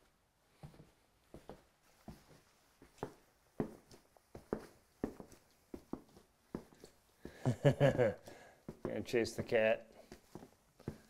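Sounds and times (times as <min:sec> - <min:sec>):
boot footsteps on wooden floor: 0:00.6 - 0:08.1, 0:08.7 - 0:11.0.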